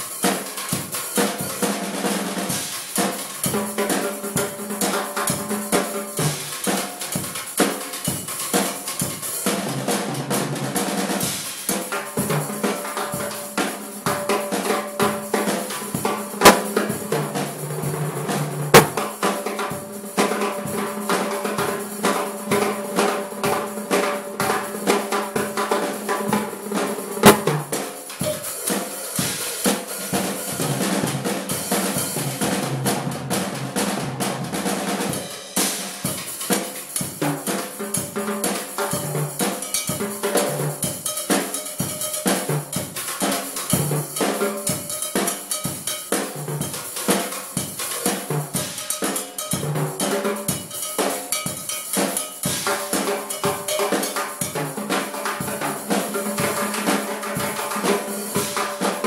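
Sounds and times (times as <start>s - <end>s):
drum kit funk groove: 0.0s - 59.0s
ringing timbale strikes: 16.4s - 17.0s, 18.8s - 19.1s, 27.2s - 27.7s.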